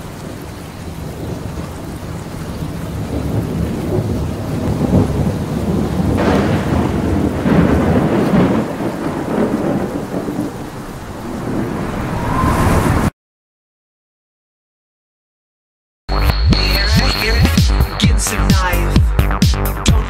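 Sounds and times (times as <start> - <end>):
steady rain: 0.0 - 13.0
thunder rumble: 0.0 - 13.1.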